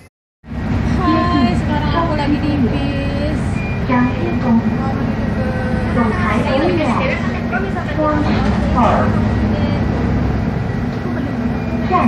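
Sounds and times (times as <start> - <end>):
bus engine rumble: 0.0 - 12.0
faint voices: 0.9 - 12.0.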